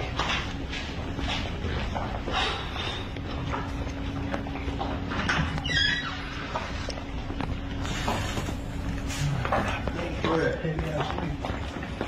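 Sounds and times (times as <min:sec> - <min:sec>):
footsteps on gym floor: 0:00.0 - 0:12.0
steady hum: 0:00.0 - 0:12.0.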